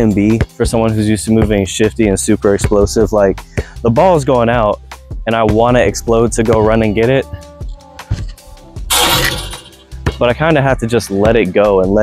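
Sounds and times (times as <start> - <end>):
background music with bass: 0.0 - 12.0
basketball hitting hoop: 8.9 - 10.3.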